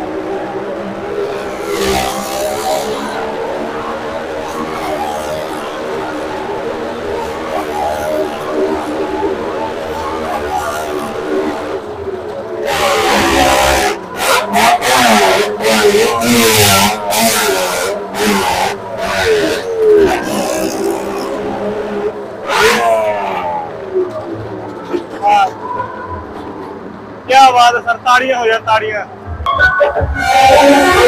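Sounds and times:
vehicle engine revving: 0:00.0 - 0:31.0.

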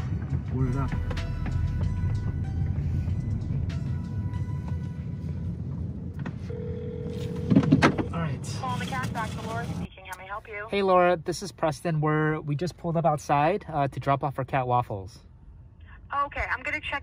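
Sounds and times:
car cabin rumble: 0:00.0 - 0:10.0
phone ring tone: 0:06.4 - 0:07.8
voice on phone: 0:08.1 - 0:10.8.

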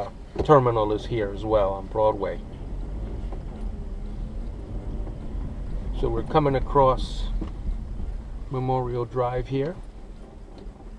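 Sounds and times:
car engine and road noise: 0:00.0 - 0:10.9.

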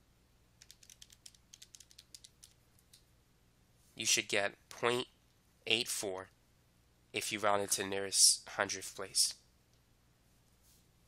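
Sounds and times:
keys clicking: 0:00.6 - 0:03.0.

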